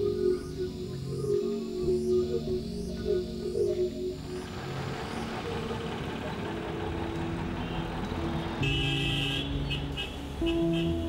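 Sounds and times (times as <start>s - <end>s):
street traffic: 0.0s - 11.0s
vehicle horn honking: 8.6s - 11.0s.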